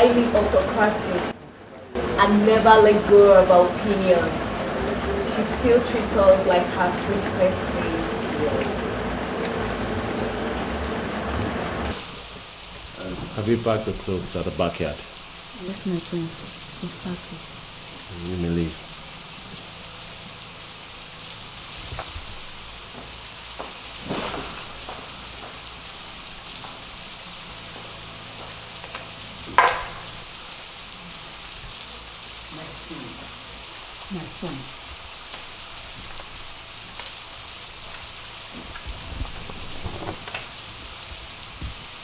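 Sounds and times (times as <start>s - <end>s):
steady rain falling: 0.0s - 42.0s.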